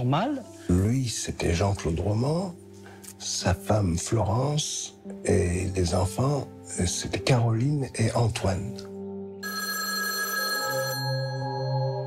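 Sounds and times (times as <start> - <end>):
low ambient music drone: 0.0 - 9.6, 10.6 - 12.0
rotary telephone ringing: 9.4 - 11.8.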